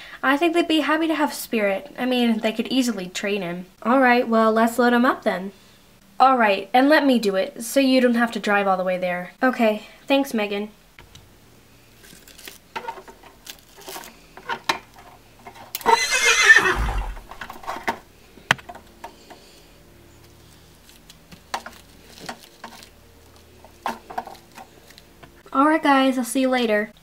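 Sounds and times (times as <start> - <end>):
horse neighing: 15.8 - 17.4.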